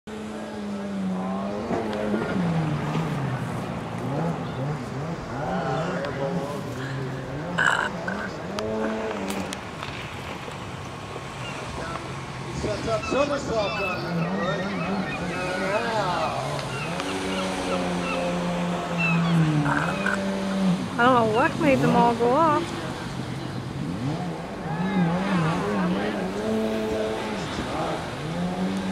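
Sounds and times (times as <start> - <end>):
engine revving up and down: 0.1 - 9.3, 15.2 - 28.9
steady background noise: 0.1 - 28.9
gulls calling: 4.1 - 28.9.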